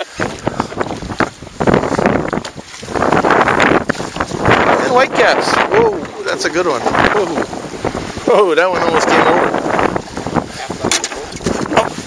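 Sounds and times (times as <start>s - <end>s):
waves slapping boat hull: 0.0s - 12.0s
wind buffeting microphone: 0.0s - 12.0s.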